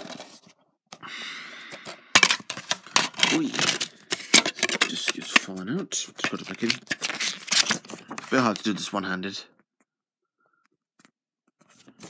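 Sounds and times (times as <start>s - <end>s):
plastic case sliding rustle: 0.0s - 0.5s, 1.8s - 8.9s
disc clicking and clattering: 2.2s - 5.5s, 6.2s - 8.8s.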